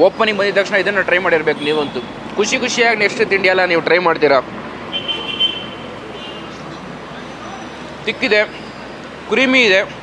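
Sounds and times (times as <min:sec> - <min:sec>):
man speaking: 0:00.0 - 0:04.5, 0:06.7 - 0:08.6
low background noise: 0:00.0 - 0:10.0.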